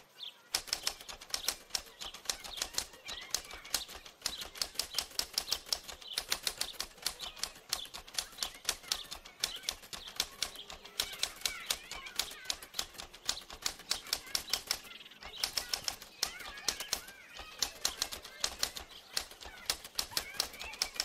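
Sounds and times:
typewriter keystrokes: 0:00.5 - 0:21.0.

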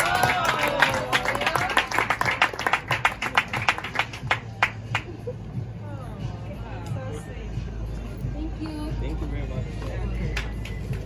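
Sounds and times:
people clapping: 0:00.0 - 0:05.2, 0:10.2 - 0:11.0.

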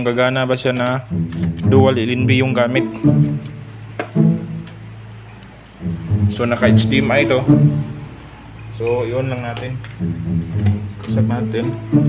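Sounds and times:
low plucked string note: 0:05.8 - 0:08.2.

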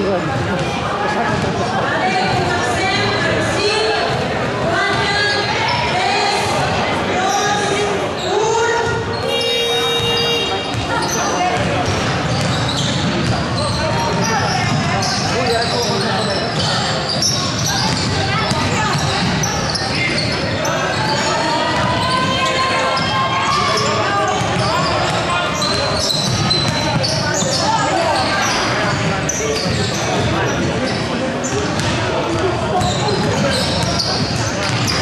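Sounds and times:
basketballs bouncing on wooden floor: 0:08.8 - 0:20.4, 0:21.7 - 0:27.7, 0:31.5 - 0:35.0.

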